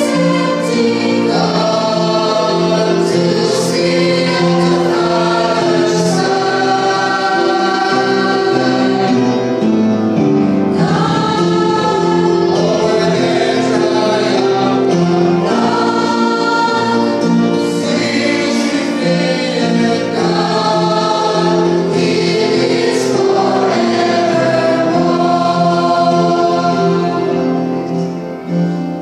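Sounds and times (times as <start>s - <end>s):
mixed choir singing a hymn: 0.0s - 29.0s.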